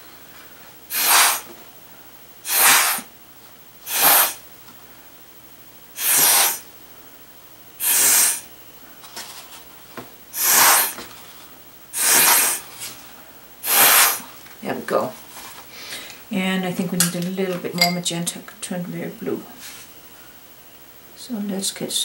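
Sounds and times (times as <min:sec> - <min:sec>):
puffs of breath through straw: 0:06.0 - 0:06.6, 0:07.8 - 0:08.5, 0:10.4 - 0:11.0, 0:12.0 - 0:12.9, 0:13.6 - 0:14.3.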